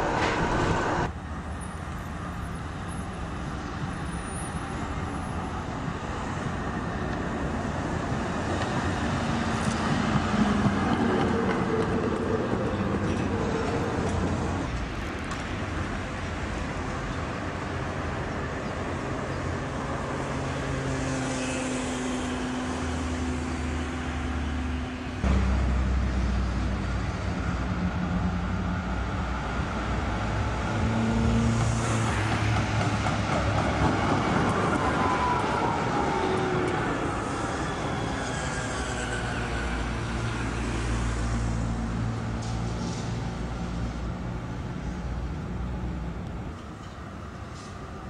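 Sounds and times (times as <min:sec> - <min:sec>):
tram wheels rumbling on rails: 0:00.0 - 0:04.1, 0:04.7 - 0:48.0.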